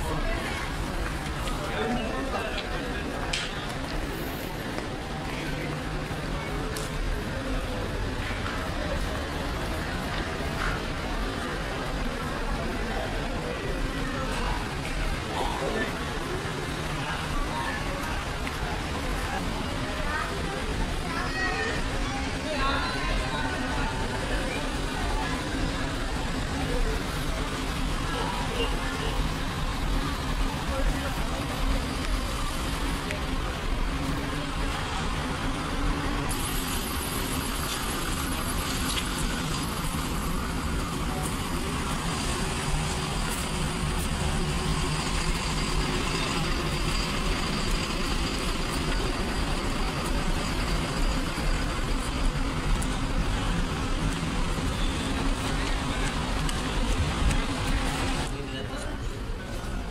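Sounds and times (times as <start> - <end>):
coach and car engines running: 0.0 - 59.9
people talking: 0.0 - 59.9
traffic rumble: 0.0 - 59.9.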